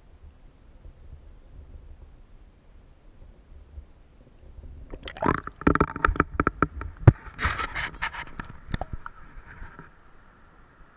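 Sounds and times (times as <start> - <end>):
knocks and splashes: 4.9 - 7.2
water sloshing and gurgling: 4.9 - 9.8.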